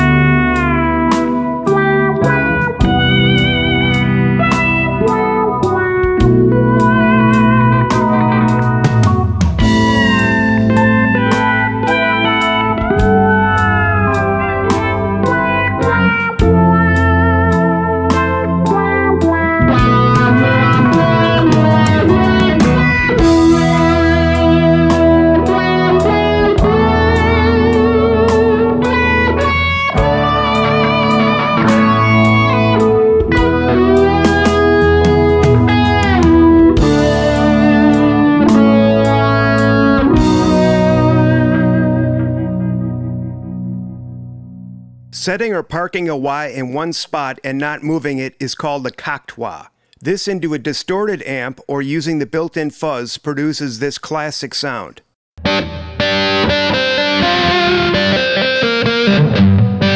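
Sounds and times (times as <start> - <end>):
distorted wah electric guitar: 0.0 - 45.5, 55.4 - 59.9
bass line: 0.0 - 46.2, 55.4 - 59.9
drum beat: 8.0 - 11.6, 19.6 - 25.2, 33.3 - 37.1.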